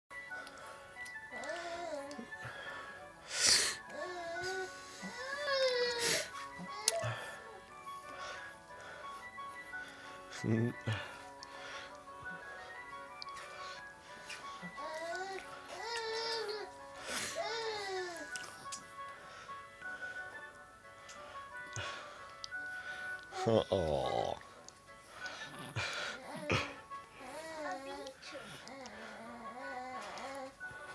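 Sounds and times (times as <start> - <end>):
baby cooing: 14.6 - 16.7.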